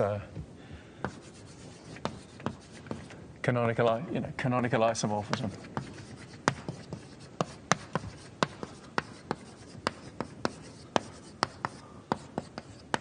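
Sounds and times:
chalk tapping on blackboard: 0:01.0 - 0:03.2, 0:05.2 - 0:13.0.

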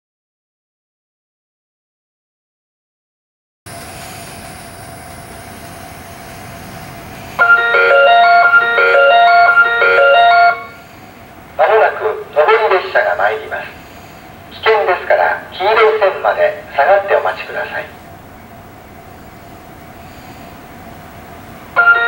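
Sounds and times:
recorded platform announcement: 0:07.4 - 0:10.8, 0:11.6 - 0:13.8, 0:14.5 - 0:18.0, 0:21.8 - 0:22.0
electronic train-approach chime: 0:07.4 - 0:11.2, 0:21.7 - 0:22.0.

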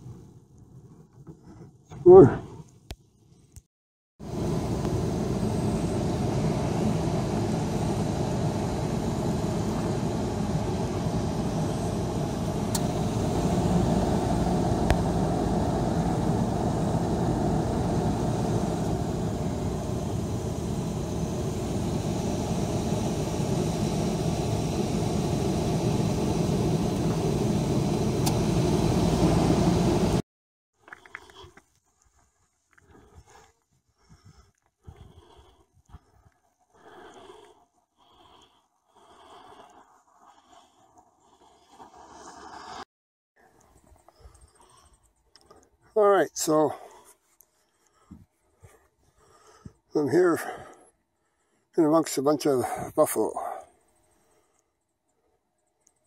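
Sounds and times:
car engine and road noise: 0:04.2 - 0:30.2.

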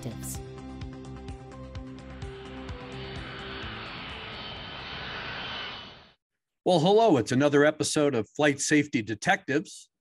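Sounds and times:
jet airliner passing: 0:01.0 - 0:06.2.

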